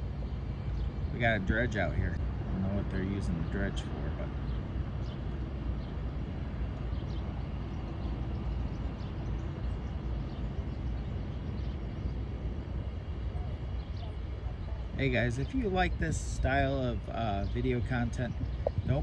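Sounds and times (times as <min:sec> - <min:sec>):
distant tugboat engine rumbling: 0:00.0 - 0:19.0.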